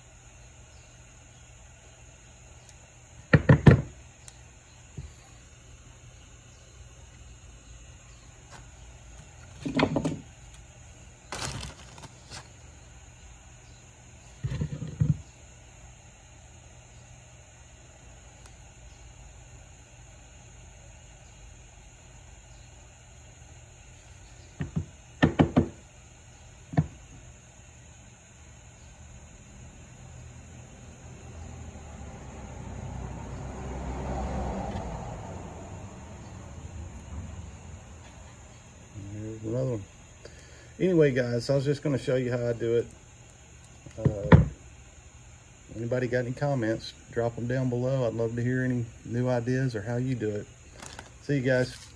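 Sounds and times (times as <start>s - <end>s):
tools knocking on wooden workbench: 3.3s - 3.9s, 9.6s - 10.2s, 24.6s - 25.8s, 44.0s - 44.5s.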